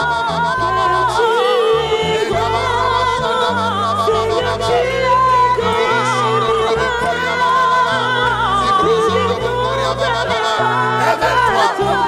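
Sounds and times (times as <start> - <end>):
voice singing with vibrato: 0.0 - 12.0.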